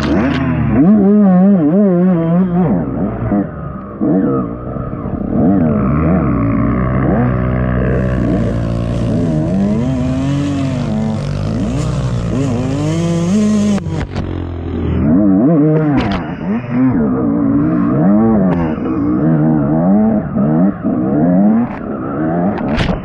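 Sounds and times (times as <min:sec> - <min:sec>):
dirt bike engine revving: 0:00.0 - 0:22.8.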